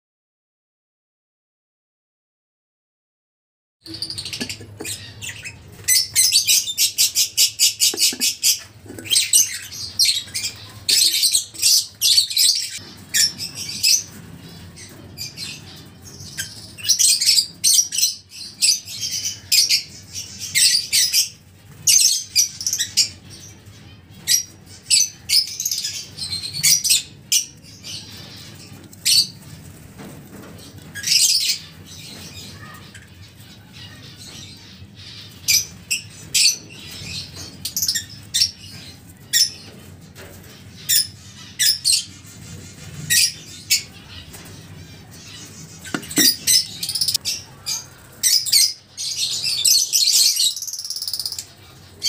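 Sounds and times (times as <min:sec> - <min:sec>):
lovebirds squawking and chirping: 0:03.9 - 0:52.0.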